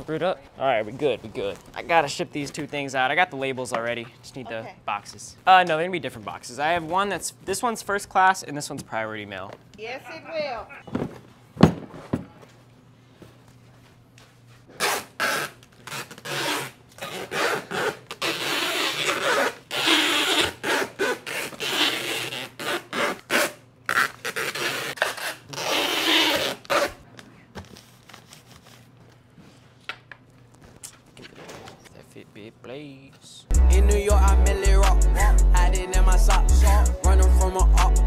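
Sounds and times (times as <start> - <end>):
packing tape pulled off roll: 14.7 - 28.9.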